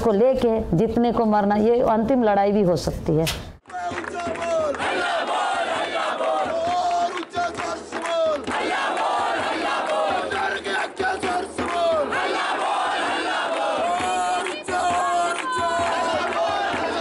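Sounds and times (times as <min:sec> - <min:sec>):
crowd shouting and chanting: 0:03.7 - 0:17.0.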